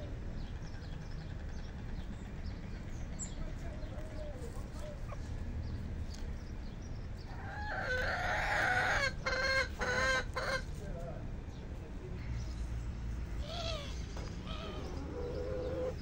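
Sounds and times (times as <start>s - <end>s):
soft chicken calls: 7.3s - 10.9s, 13.4s - 16.0s.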